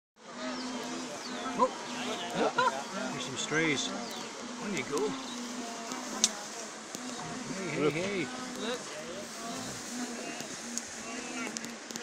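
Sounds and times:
insect buzzing: 0:00.2 - 0:12.0.

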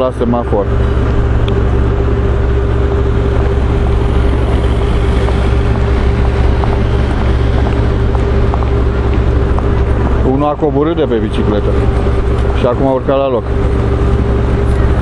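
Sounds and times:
constant hum: 0:00.0 - 0:15.0
low rumble of traffic: 0:00.0 - 0:15.0.

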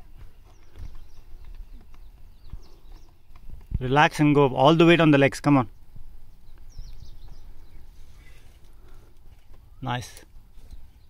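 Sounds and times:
wind rumble on microphone: 0:00.0 - 0:04.3, 0:05.7 - 0:08.3.

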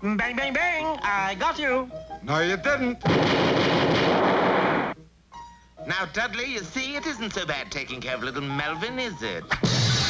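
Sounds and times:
cartoon gunfire burst: 0:03.0 - 0:05.0, 0:09.6 - 0:10.0.

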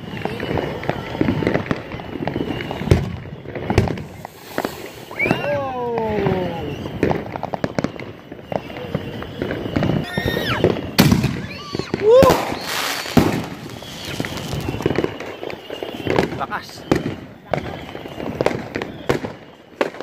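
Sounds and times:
firework fountain crackling: 0:00.0 - 0:20.0
sharp firework bangs: 0:00.0 - 0:20.0
small firework pops: 0:00.0 - 0:20.0.

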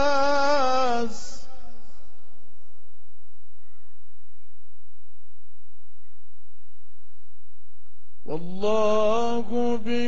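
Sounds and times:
man chanting melodically: 0:00.0 - 0:02.6, 0:08.2 - 0:10.0.

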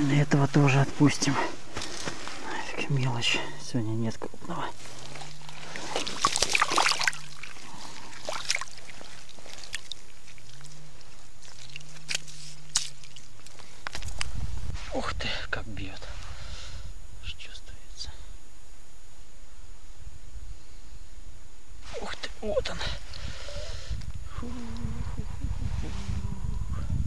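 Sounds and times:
slush and water sloshing: 0:04.8 - 0:13.6
ice clicks: 0:11.4 - 0:14.2
man humming: 0:23.5 - 0:27.0.

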